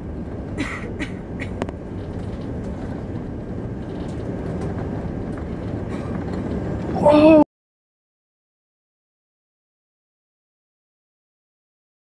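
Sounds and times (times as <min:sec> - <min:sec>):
airliner cabin rumble: 0:00.0 - 0:07.5.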